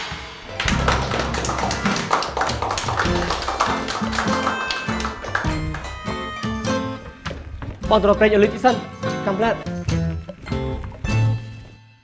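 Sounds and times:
steady drum beat: 0.0s - 4.4s, 5.0s - 10.2s
rock band playing: 0.5s - 7.8s.

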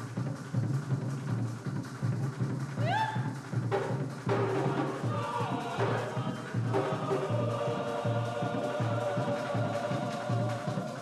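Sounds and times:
steady drumbeat: 0.0s - 11.0s
chorus of voices singing: 4.2s - 11.0s.

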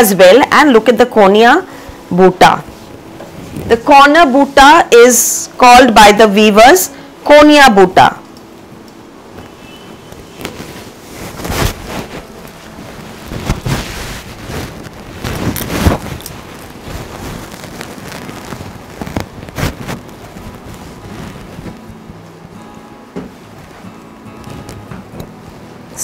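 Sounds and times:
silk fabric rustling: 2.4s - 4.8s, 9.4s - 26.0s.

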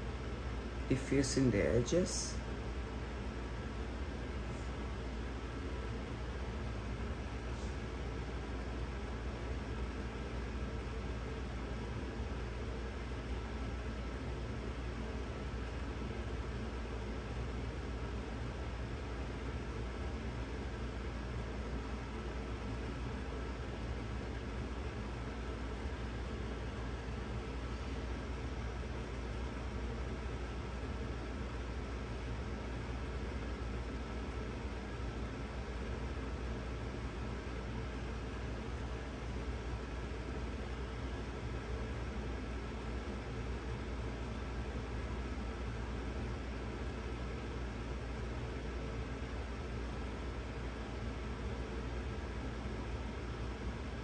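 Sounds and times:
steady background hiss: 0.0s - 54.0s.

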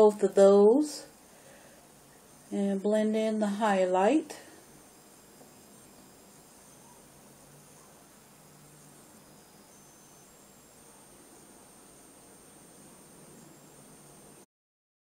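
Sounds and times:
faint high whine: 0.0s - 14.5s
recording hiss: 0.0s - 14.5s.

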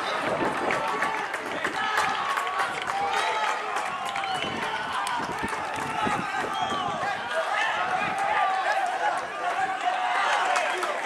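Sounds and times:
voices shouting outdoors: 0.0s - 11.0s.

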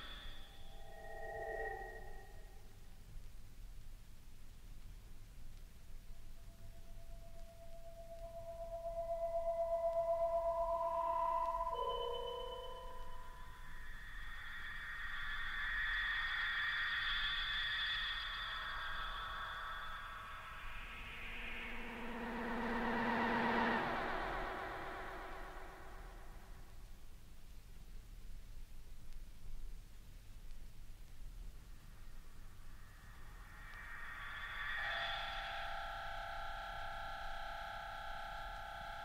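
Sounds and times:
high wavering tones: 0.0s - 3.0s, 6.1s - 26.8s, 32.6s - 39.0s.

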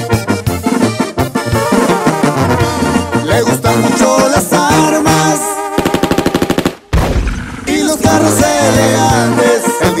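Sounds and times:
latin remix music: 0.0s - 10.0s
machine-gun fire burst: 5.8s - 8.3s
low rumbling noise: 7.0s - 9.1s.

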